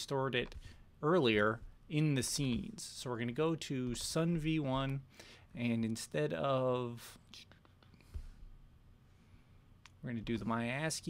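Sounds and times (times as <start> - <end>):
soft clicks: 9.8 - 10.0.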